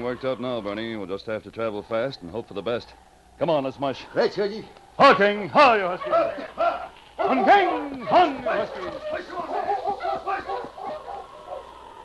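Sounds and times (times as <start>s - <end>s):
sled dogs yapping and barking: 5.0s - 12.0s.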